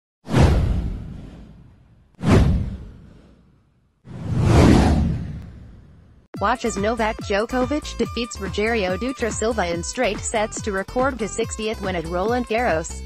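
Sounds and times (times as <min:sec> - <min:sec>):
whoosh sound effects: 0:00.3 - 0:03.4, 0:04.1 - 0:06.0.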